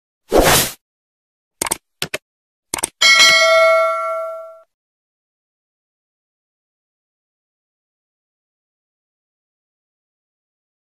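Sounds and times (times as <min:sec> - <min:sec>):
bell ding: 0:03.0 - 0:04.7.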